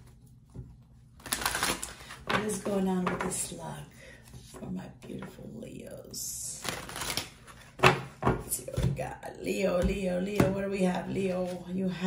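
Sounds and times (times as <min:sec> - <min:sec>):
cards being shuffled: 0:01.2 - 0:02.3, 0:06.6 - 0:07.8.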